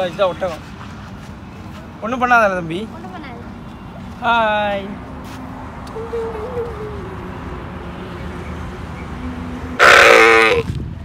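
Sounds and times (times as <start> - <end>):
camel calling: 9.8 - 10.7.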